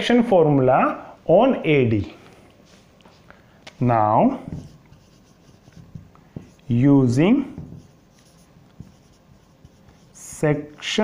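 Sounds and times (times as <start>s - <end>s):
marker pen writing on whiteboard: 4.1s - 11.0s.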